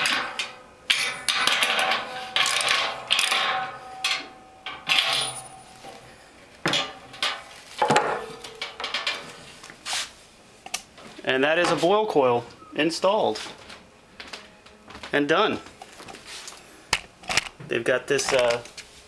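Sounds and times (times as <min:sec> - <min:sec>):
socket wrench clinking on metal: 0:00.0 - 0:05.8.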